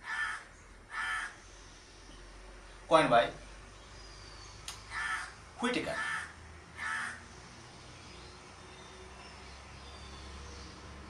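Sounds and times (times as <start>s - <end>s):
crow cawing: 0.0s - 1.4s, 4.9s - 7.3s.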